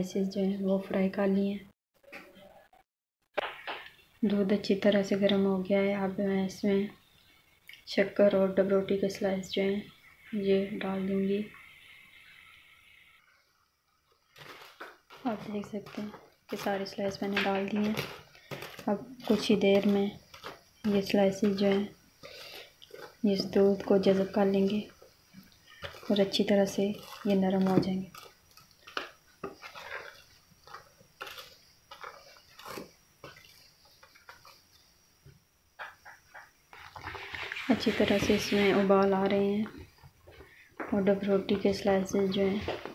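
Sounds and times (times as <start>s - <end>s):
woman speaking: 0.0s - 1.7s, 4.2s - 7.0s, 7.9s - 11.6s, 15.2s - 18.1s, 18.8s - 20.2s, 20.8s - 22.0s, 23.2s - 24.9s, 26.0s - 28.1s, 37.6s - 39.8s, 40.9s - 42.8s
wooden spatula scraping metal pot: 14.4s - 34.7s, 36.7s - 39.5s.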